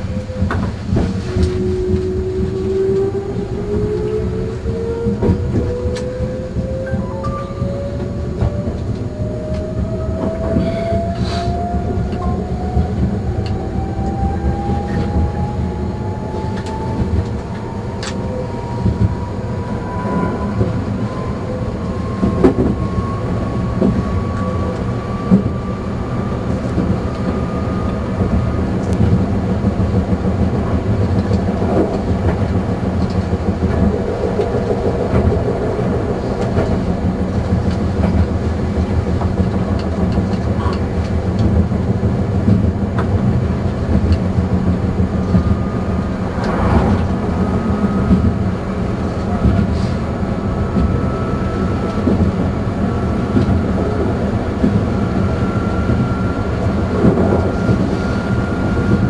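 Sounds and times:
electric train motor whine: 0.0 - 39.1, 44.2 - 59.0
rail joint clicks: 0.0 - 59.0
wheels rumbling on track: 0.0 - 59.0.

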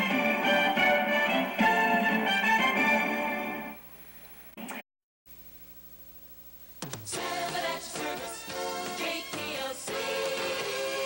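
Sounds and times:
news theme music: 0.0 - 3.8
tape hiss and hum: 0.0 - 11.0.

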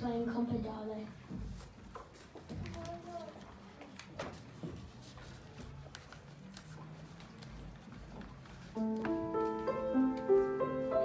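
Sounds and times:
grand piano playing: 8.8 - 11.0.

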